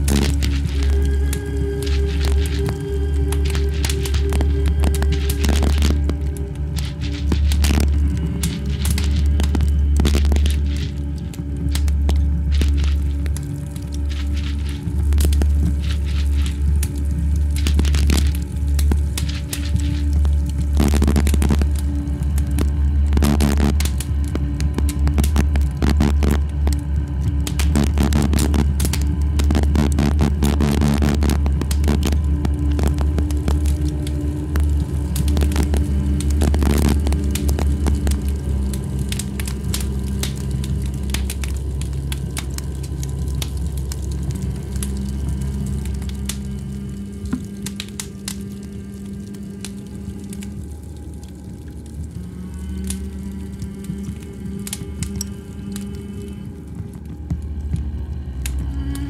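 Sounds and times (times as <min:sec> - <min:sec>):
deep bass drone: 0:00.0 - 0:59.0
dense crackling texture: 0:00.0 - 0:59.0.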